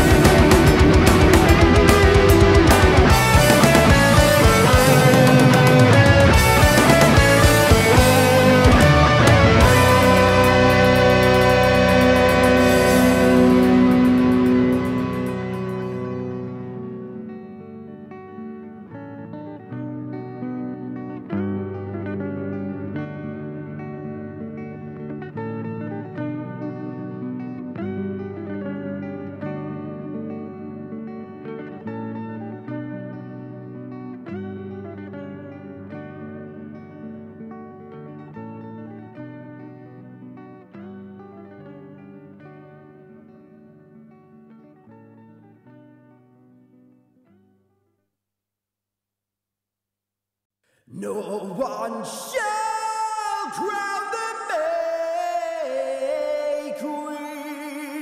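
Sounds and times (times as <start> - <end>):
solo guitar picking: 0.0 - 47.5.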